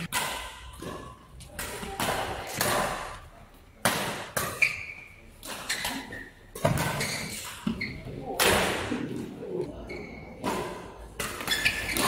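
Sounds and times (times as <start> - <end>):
racket striking shuttlecock: 0.0 - 3.2.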